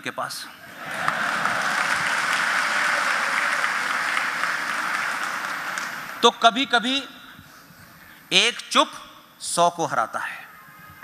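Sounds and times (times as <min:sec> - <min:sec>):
audience applauding: 0:00.7 - 0:06.2.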